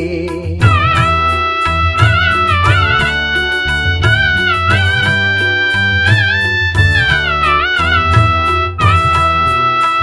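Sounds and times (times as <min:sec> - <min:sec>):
steady bass: 0:00.0 - 0:10.0
bending melody line: 0:00.6 - 0:10.0
plucked strings: 0:00.6 - 0:10.0.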